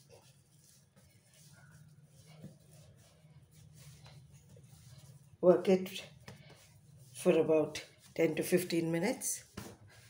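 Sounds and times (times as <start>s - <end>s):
hands kneading dough: 0.0s - 10.0s.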